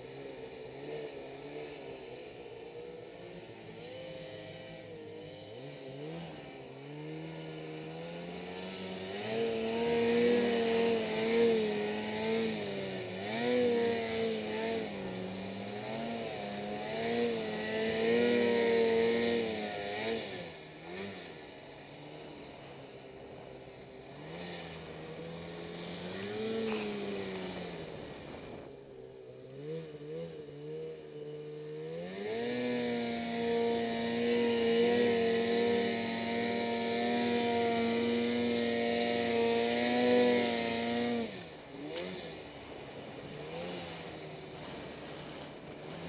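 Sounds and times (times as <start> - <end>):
snowmobile engine revving: 0.0 - 46.0.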